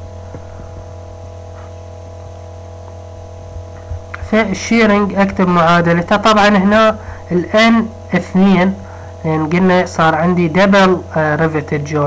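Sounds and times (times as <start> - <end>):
electrical mains hum: 0.0 - 12.0
faint steady tones: 0.0 - 12.0.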